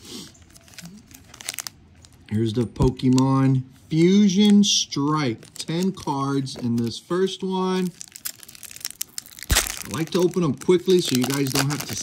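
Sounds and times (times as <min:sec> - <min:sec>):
foil wrappers crinkling: 0:00.3 - 0:12.0.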